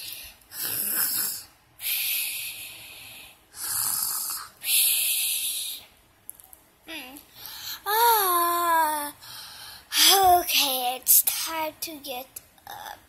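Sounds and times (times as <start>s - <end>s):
child pretend snoring: 0.5s - 1.5s, 3.6s - 4.5s.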